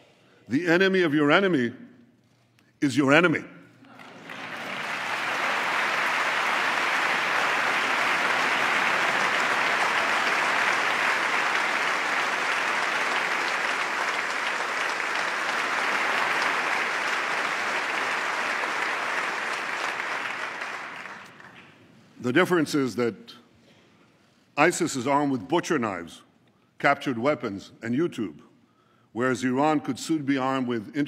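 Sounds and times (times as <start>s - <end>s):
crowd applauding: 3.8s - 21.6s.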